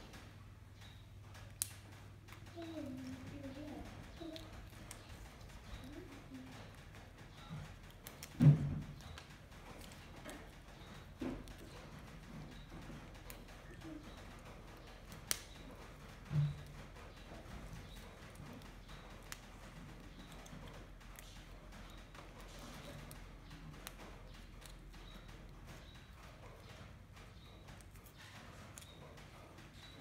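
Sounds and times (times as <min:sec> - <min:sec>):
beans snapping by hand: 0:00.0 - 0:30.0
monkey chewing green beans: 0:00.0 - 0:30.0.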